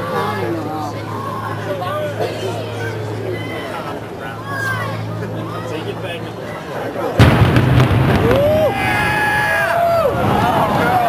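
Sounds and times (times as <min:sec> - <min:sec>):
crowd whooping: 0:07.2 - 0:11.0
demolition explosion blast: 0:07.2 - 0:11.0.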